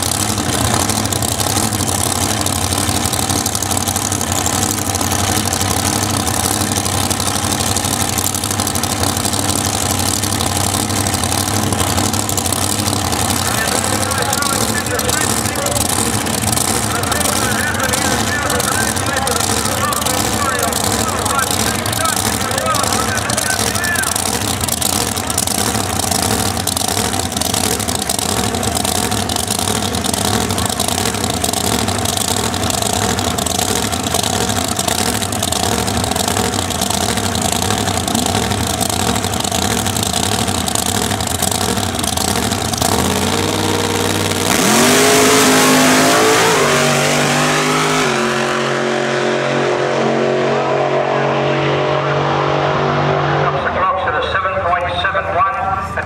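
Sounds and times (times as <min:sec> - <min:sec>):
drag car engine idling and launching: 0:00.0 - 0:56.0.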